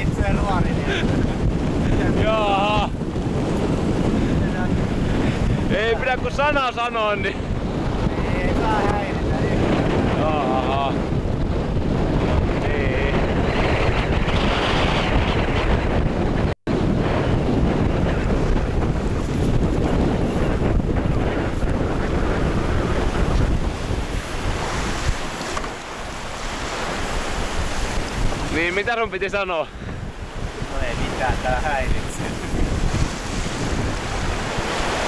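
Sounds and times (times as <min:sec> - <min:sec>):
strong wind buffeting microphone: 0:00.0 - 0:35.0
waves breaking: 0:00.0 - 0:35.0.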